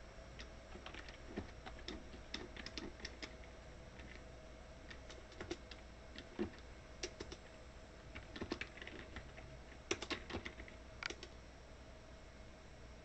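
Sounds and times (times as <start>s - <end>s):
faint steady hum: 0.0s - 13.0s
computer keyboard clicks: 0.4s - 3.4s, 4.9s - 7.5s, 8.2s - 11.4s.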